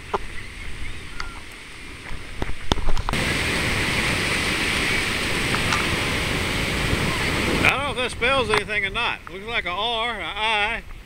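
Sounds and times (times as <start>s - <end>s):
ocean surf washing: 0.0s - 11.0s
wind rushing: 2.6s - 9.8s.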